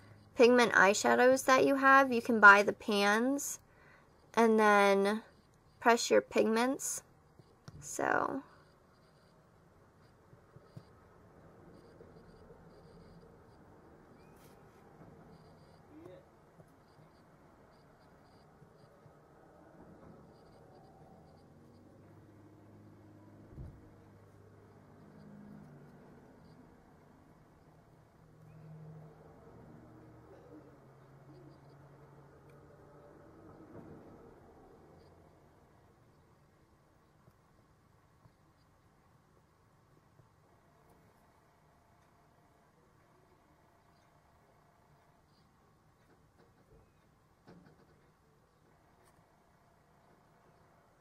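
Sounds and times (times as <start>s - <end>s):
soft thump: 23.5s - 23.8s.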